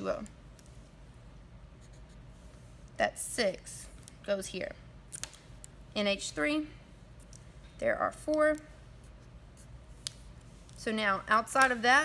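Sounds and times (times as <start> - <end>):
marker drawing on paper: 1.8 - 2.5.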